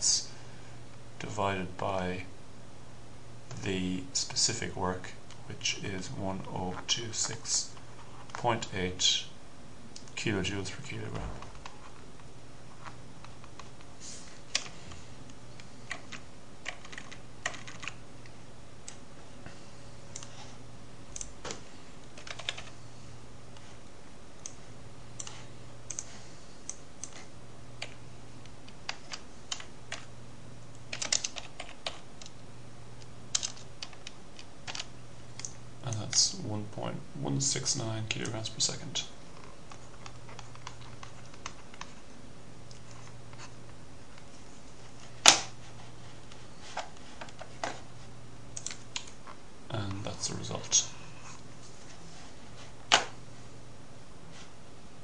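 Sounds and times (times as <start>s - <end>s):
faint low hum: 0.0s - 55.0s
computer keyboard keys clicking: 15.8s - 18.0s, 22.2s - 22.8s, 25.2s - 26.1s, 28.9s - 30.1s, 30.9s - 32.4s, 33.3s - 36.2s, 48.6s - 49.2s.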